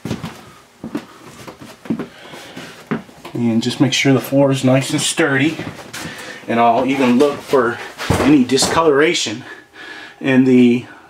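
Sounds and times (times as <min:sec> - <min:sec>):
dull footstep thumps on floor: 0:00.0 - 0:02.1, 0:06.8 - 0:09.0.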